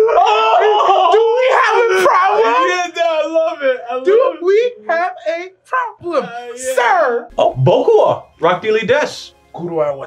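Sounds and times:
men yelling and whooping: 0:00.0 - 0:08.8.

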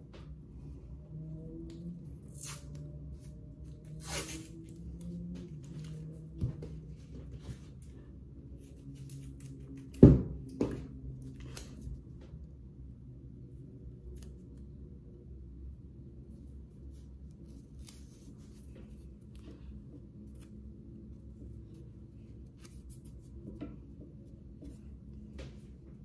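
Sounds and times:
scissors cutting tape: 0:02.2 - 0:02.8
tape peeling off roll: 0:03.9 - 0:04.8.

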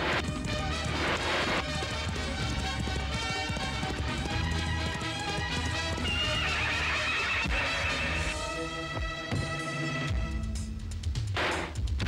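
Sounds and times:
background film music: 0:00.0 - 0:12.0.

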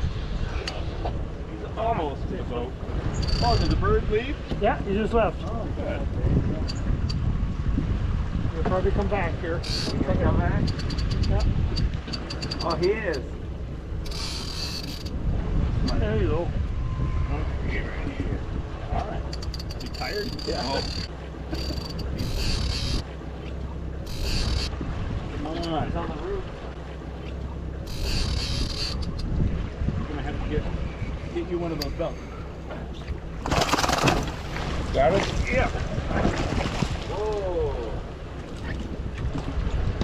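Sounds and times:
wind and boat rumble: 0:00.0 - 0:40.0
fishing reel whirring: 0:09.6 - 0:10.0, 0:14.0 - 0:15.1, 0:19.3 - 0:23.0, 0:24.0 - 0:24.7, 0:27.8 - 0:29.3
fishing reel clicking: 0:14.0 - 0:15.1, 0:19.3 - 0:23.0, 0:24.1 - 0:24.7, 0:27.9 - 0:29.3.

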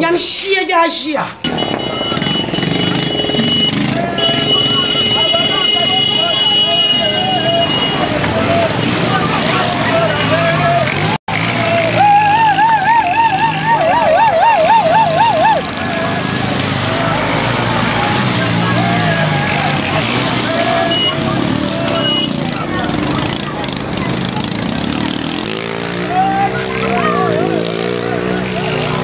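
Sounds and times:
people talking: 0:00.0 - 0:01.4, 0:02.1 - 0:29.0.

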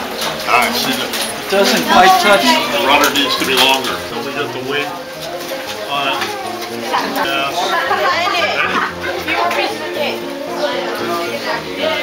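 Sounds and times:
people talking indistinctly: 0:00.4 - 0:12.0.

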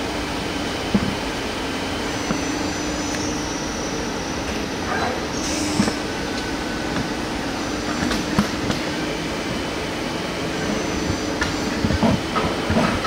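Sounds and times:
lathe humming: 0:00.0 - 0:13.0.

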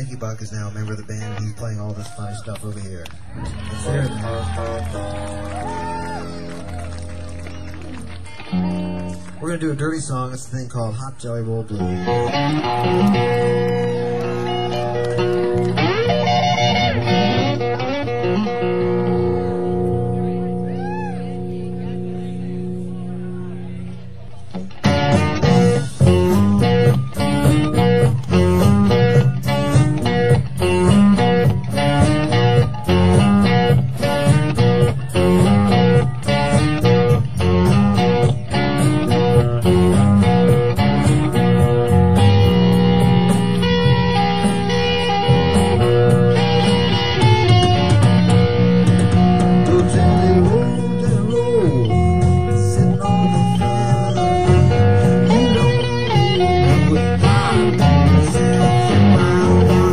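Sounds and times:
held guitar notes and chords: 0:00.0 - 0:59.9
electric blues-rock band: 0:02.6 - 0:09.4, 0:11.8 - 0:23.2, 0:23.8 - 0:59.9.

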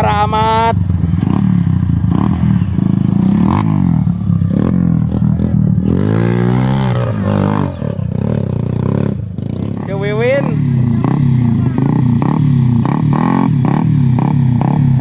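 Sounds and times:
motorcycle engine revving: 0:00.0 - 0:15.0.

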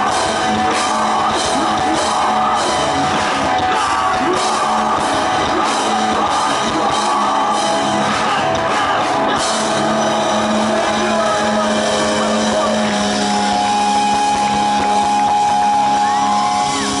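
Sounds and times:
electric guitars droning: 0:00.0 - 0:17.0
live rock music: 0:00.0 - 0:17.0.

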